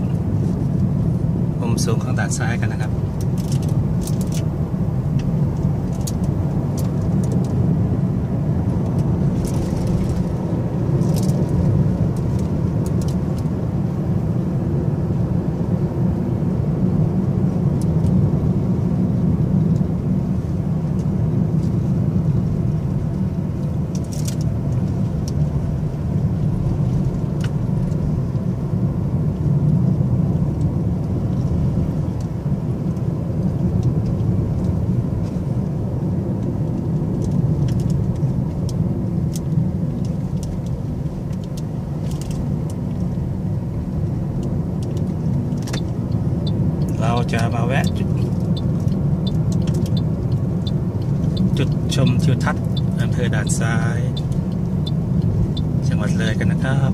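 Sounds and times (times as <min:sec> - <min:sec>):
car engine and tyre drone: 0:00.0 - 0:56.9.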